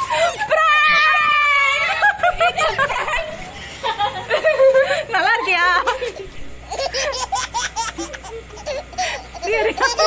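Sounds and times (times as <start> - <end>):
laughter in quick bursts: 1.8 - 5.1.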